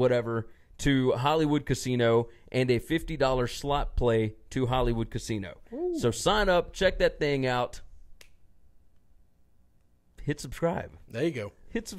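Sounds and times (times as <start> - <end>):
finger snap: 8.2 - 9.1.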